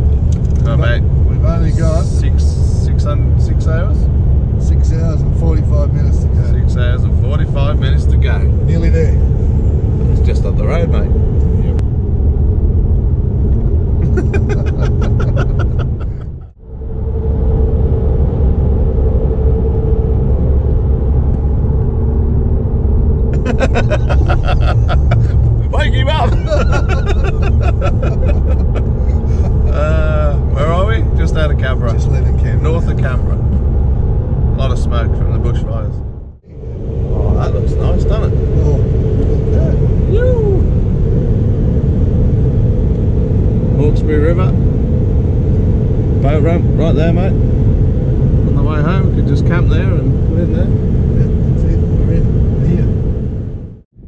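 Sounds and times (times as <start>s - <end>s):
car cabin road rumble: 0.0s - 54.0s
people talking: 0.6s - 4.0s, 4.6s - 9.2s, 10.1s - 11.8s, 14.0s - 16.5s, 23.4s - 33.6s, 34.5s - 36.0s, 37.1s - 40.7s, 43.7s - 44.6s, 46.2s - 47.4s, 48.5s - 52.9s.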